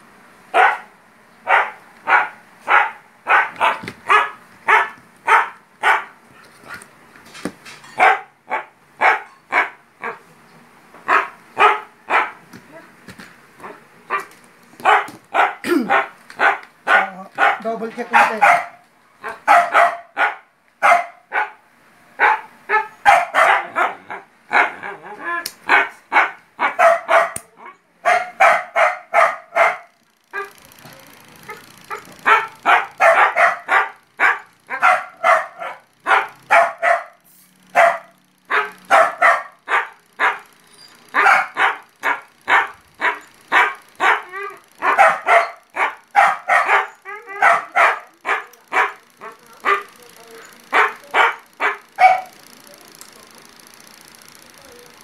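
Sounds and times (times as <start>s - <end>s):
dog barking: 0.5s - 6.2s, 8.0s - 10.2s, 11.1s - 12.4s, 13.6s - 21.6s, 22.2s - 25.0s, 25.7s - 30.6s, 31.5s - 49.9s, 50.7s - 52.4s.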